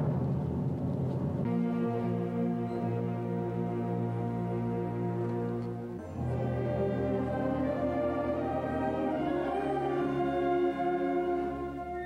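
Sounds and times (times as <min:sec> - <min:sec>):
timpani roll: 0:00.0 - 0:02.5
concert band holding chord: 0:01.4 - 0:12.0.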